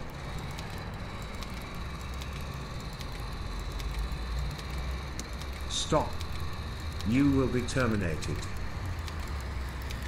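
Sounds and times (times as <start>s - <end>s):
faint high whine: 0.0s - 10.0s
tracked robot rolling: 0.0s - 10.0s.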